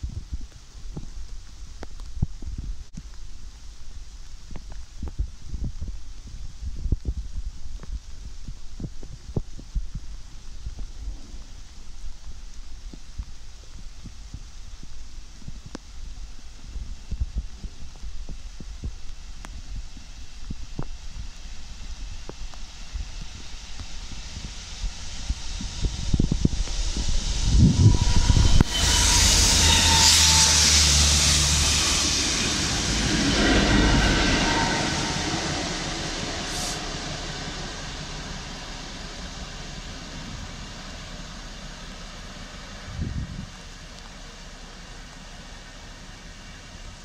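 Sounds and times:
loud hiss of water jets: 0:07.4 - 0:47.0
diesel engine: 0:22.8 - 0:47.0
wagons rumbling past: 0:23.5 - 0:43.9.

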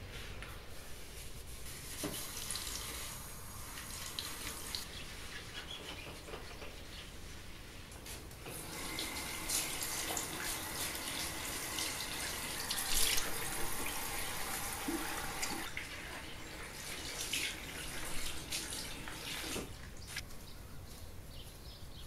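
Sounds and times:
gloved hands scrubbing basin: 0:00.4 - 0:03.1
tap running into washbasin: 0:08.5 - 0:19.8.

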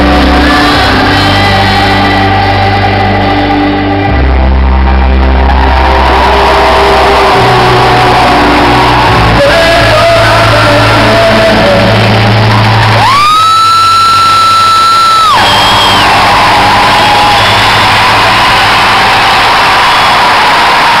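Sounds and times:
crowd shouting: 0:04.8 - 0:10.4, 0:15.0 - 0:21.0.

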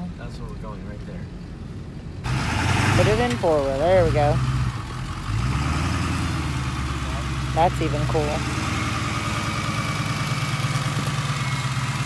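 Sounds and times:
vehicle rumble from inside cab: 0:00.0 - 0:12.0
diesel engine idling: 0:02.2 - 0:12.0.

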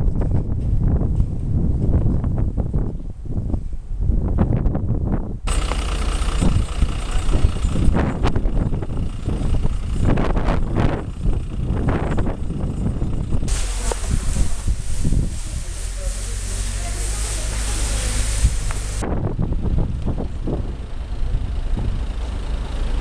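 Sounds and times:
wind buffeting microphone: 0:00.0 - 0:05.6, 0:06.2 - 0:22.2
fire engine motor running: 0:05.4 - 0:23.0.

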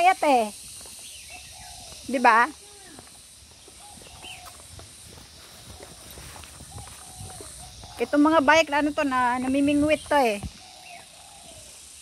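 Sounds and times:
high insect drone: 0:00.0 - 0:12.0
footsteps on paved path: 0:00.6 - 0:08.7
bird calls: 0:00.6 - 0:12.0.

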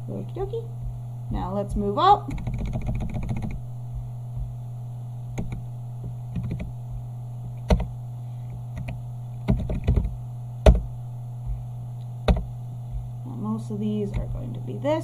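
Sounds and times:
steady low hum: 0:00.0 - 0:15.0
keyboard keystrokes: 0:02.3 - 0:03.6, 0:05.4 - 0:05.6, 0:06.3 - 0:06.7, 0:07.6 - 0:07.9, 0:08.8 - 0:10.1.

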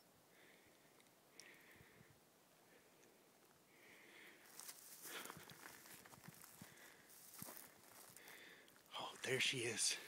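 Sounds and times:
twigs crackling underfoot: 0:04.1 - 0:09.8
footsteps on forest floor: 0:04.4 - 0:09.8.

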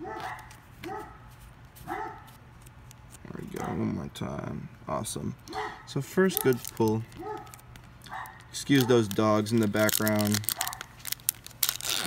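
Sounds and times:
dogs barking: 0:00.0 - 0:02.3, 0:03.5 - 0:04.0, 0:05.4 - 0:09.1, 0:10.5 - 0:11.0.

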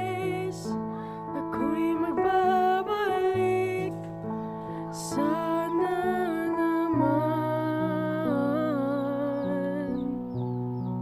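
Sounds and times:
instrumental backing chords: 0:00.0 - 0:11.0.

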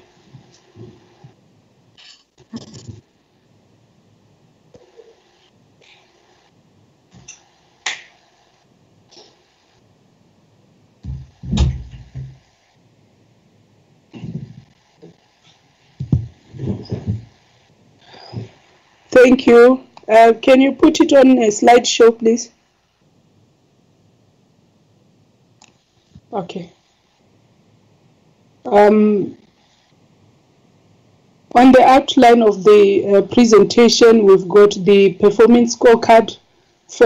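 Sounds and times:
muffled bumps: 0:11.0 - 0:12.4, 0:16.0 - 0:17.4.

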